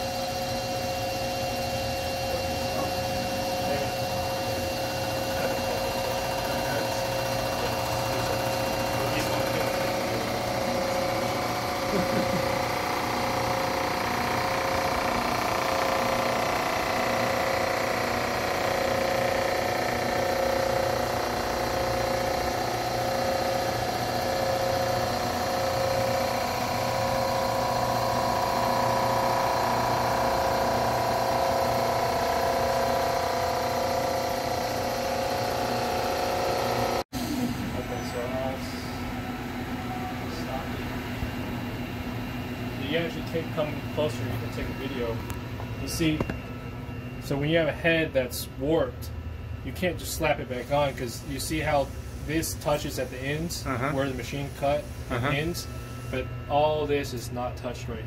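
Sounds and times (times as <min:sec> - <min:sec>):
milling machine whine: 0:00.0 - 0:58.0.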